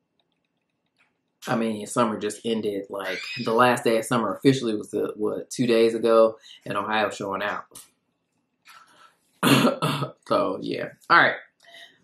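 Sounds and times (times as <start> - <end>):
faint breath: 8.7 - 9.3
woman coughing: 9.4 - 10.1.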